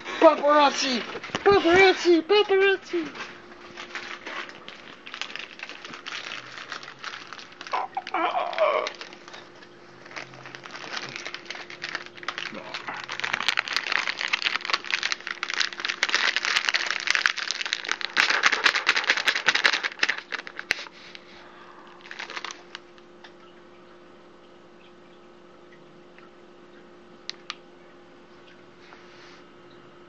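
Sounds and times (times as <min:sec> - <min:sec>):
low steady hum: 0:00.0 - 0:30.0
plastic snack bag crinkling: 0:03.0 - 0:21.2, 0:22.0 - 0:22.9.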